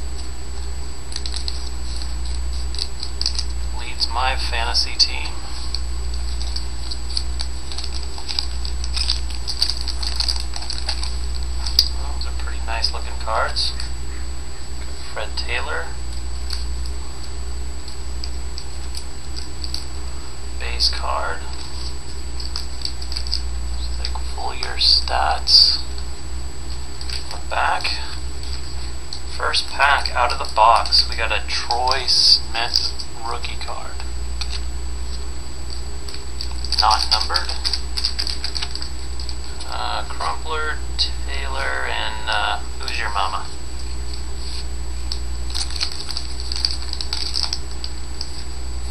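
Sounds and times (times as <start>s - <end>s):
low electrical hum: 0.0s - 48.9s
trading cards flicked through by hand: 1.1s - 3.6s, 4.9s - 12.0s, 21.5s - 25.7s, 34.4s - 39.7s, 43.8s - 48.9s.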